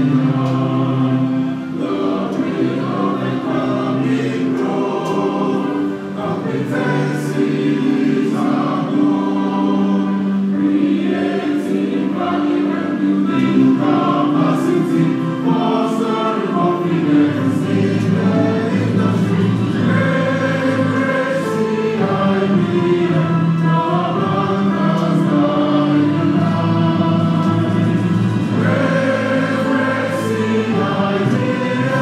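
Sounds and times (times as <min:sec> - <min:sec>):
many voices singing slow song: 0:00.0 - 0:32.0.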